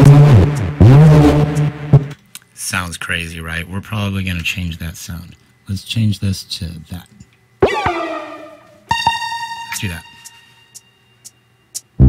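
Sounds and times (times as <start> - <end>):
synthesizer notes: 0.0 - 2.1, 7.6 - 10.6.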